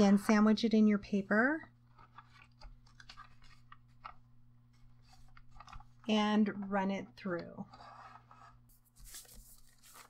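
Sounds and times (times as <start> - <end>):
low steady hum: 0.0 - 10.0
paper rustling and folding: 1.8 - 6.1, 7.3 - 10.0.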